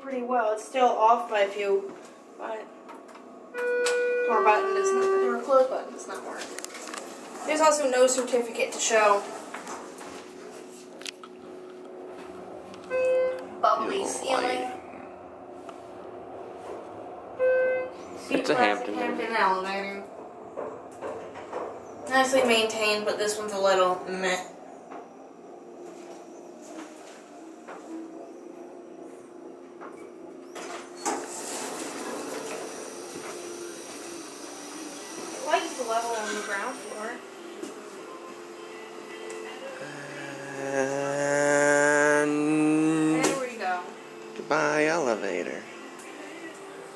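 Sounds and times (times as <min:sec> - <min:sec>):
elevator cab humming: 0:00.0 - 0:46.9
elevator chime beep: 0:03.5 - 0:05.7, 0:12.9 - 0:14.0, 0:17.4 - 0:18.0
person humming a long note: 0:03.6 - 0:05.4, 0:39.3 - 0:43.4
brief vocal sound: 0:39.8 - 0:43.4.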